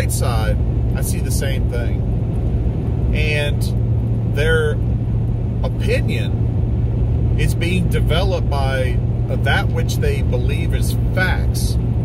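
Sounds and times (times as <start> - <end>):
man speaking: 0.0 - 2.0, 3.2 - 4.8, 5.6 - 6.4, 7.4 - 11.8
vehicle road and engine rumble: 0.0 - 12.0.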